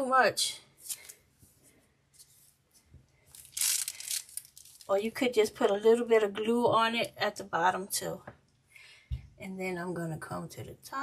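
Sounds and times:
piping bag rustling: 0:03.3 - 0:05.0.

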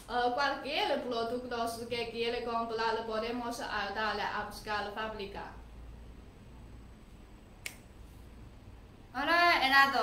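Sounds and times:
short sharp click: 0:07.6 - 0:07.9.

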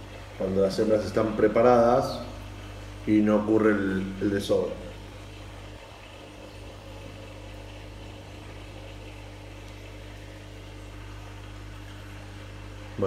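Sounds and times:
aquarium air pump humming: 0:00.0 - 0:13.0.

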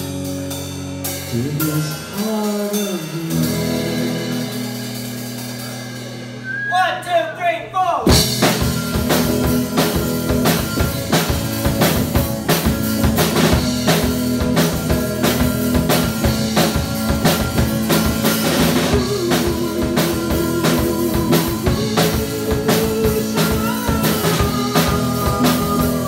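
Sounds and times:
strummed electric guitar chords: 0:00.0 - 0:06.5, 0:08.1 - 0:26.0
drum kit beat: 0:00.0 - 0:07.2, 0:07.8 - 0:26.0.

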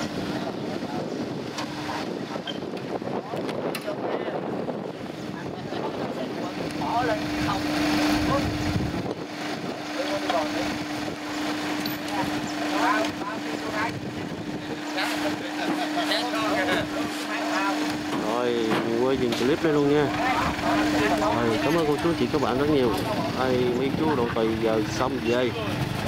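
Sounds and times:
distant voices talking: 0:00.0 - 0:26.0
wind buffeting microphone: 0:00.0 - 0:26.0.

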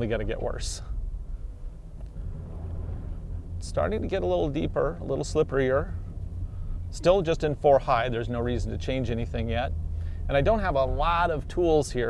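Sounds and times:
car engine rumble in cabin: 0:00.0 - 0:12.0.

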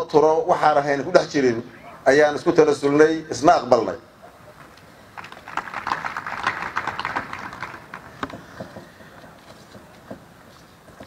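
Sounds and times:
audience applauding: 0:05.2 - 0:08.3.

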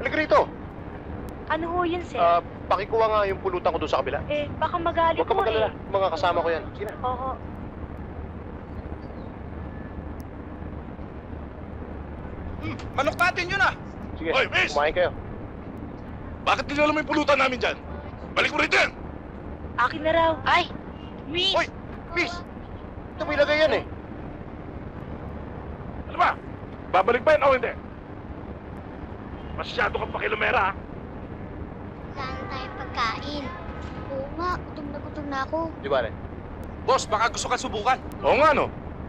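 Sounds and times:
low rumble and hiss: 0:00.0 - 0:39.0.

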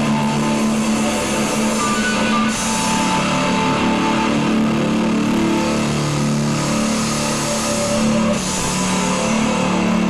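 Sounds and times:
distorted guitar and bass notes: 0:00.0 - 0:10.0.

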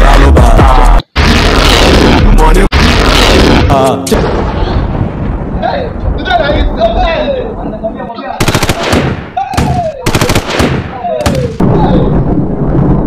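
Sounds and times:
gunfire bursts: 0:08.4 - 0:11.7
man crying out: 0:09.4 - 0:10.2.

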